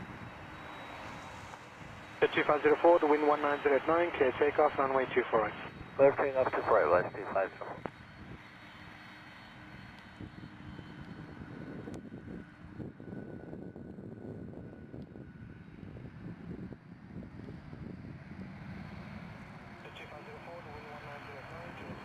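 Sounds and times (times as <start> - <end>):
jet engines at takeoff power: 0.0 - 22.0.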